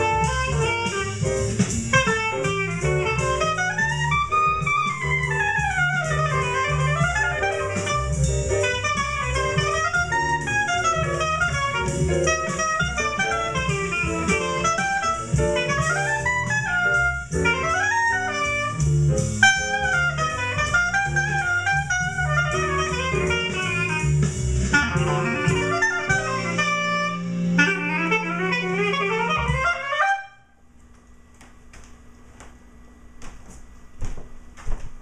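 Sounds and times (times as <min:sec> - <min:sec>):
clarinet jazz solo: 0:00.0 - 0:30.6
backing track with bass line: 0:00.0 - 0:35.0.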